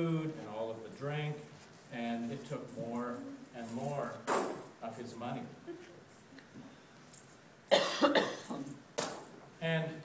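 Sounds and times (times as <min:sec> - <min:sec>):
man coughing: 0:07.7 - 0:08.7.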